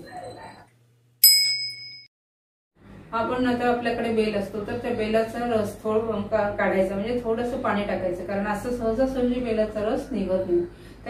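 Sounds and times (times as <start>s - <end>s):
bell-like ding: 1.2s - 2.1s.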